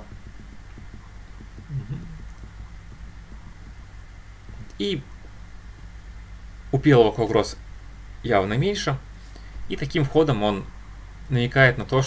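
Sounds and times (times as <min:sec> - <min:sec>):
faint low ticking: 0:00.0 - 0:09.8
steady low hum: 0:00.0 - 0:12.0
man murmuring: 0:01.6 - 0:02.3.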